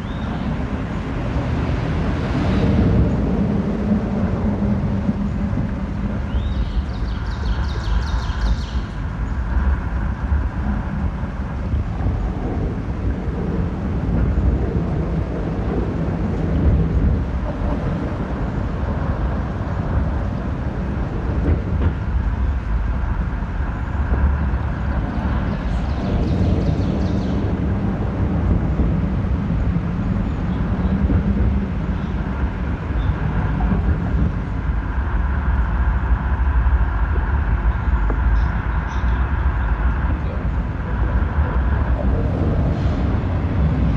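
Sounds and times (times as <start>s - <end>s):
low rumble: 0.0s - 43.9s.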